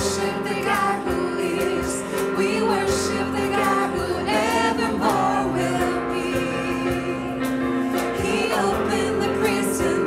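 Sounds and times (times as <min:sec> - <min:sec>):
female voices in harmony: 0:00.0 - 0:10.0
instrumental accompaniment: 0:00.0 - 0:10.0.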